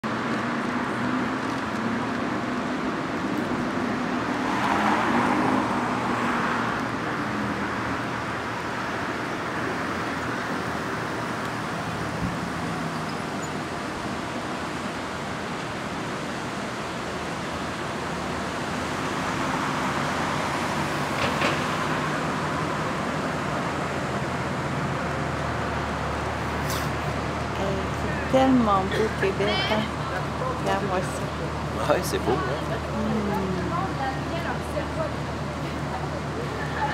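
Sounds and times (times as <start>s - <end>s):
city street traffic: 0.0s - 36.9s
vehicles passing: 0.0s - 36.9s.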